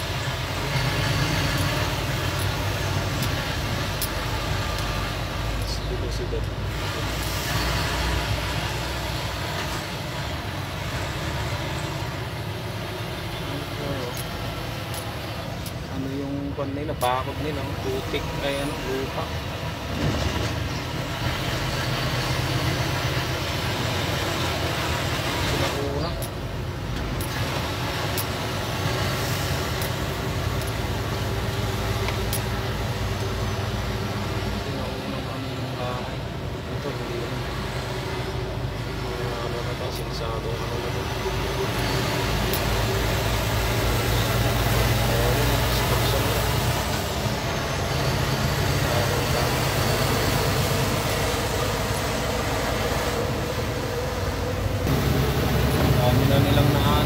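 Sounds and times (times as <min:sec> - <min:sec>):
engine hum: 0:00.0 - 0:57.0.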